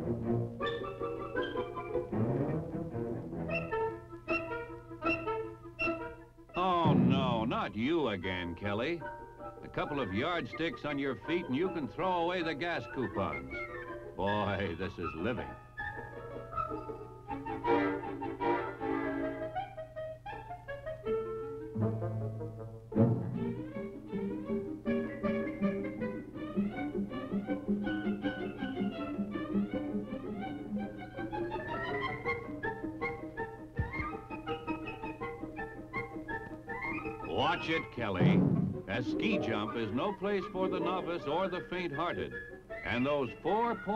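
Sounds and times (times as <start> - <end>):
orchestral string music: 0.0 - 43.9.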